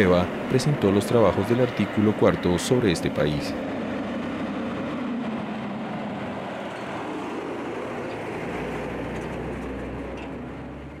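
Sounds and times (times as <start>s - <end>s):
street traffic: 0.0s - 11.0s
truck engine passing: 0.0s - 11.0s.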